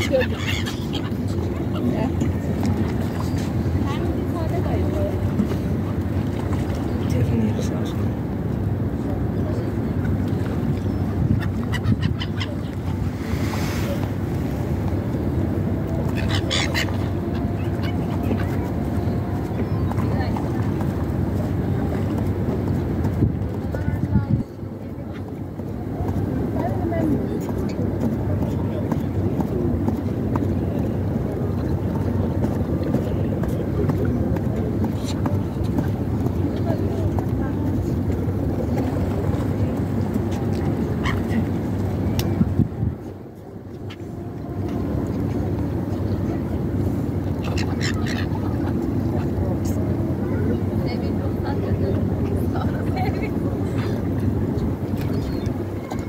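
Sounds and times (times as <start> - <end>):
gulls calling: 0.0 - 5.5, 10.6 - 21.0, 34.8 - 42.5, 43.6 - 56.0
people talking: 0.0 - 56.0.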